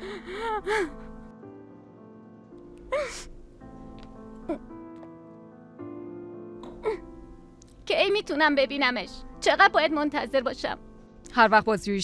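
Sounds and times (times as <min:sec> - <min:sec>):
woman sobbing: 0:00.0 - 0:01.3, 0:02.8 - 0:03.4, 0:04.4 - 0:04.7, 0:06.7 - 0:07.2
soft background music: 0:00.0 - 0:12.0.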